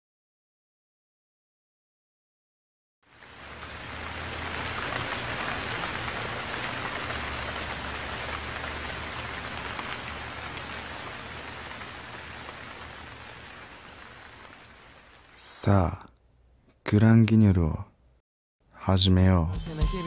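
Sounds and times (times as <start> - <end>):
steady hiss: 3.1 - 16.2.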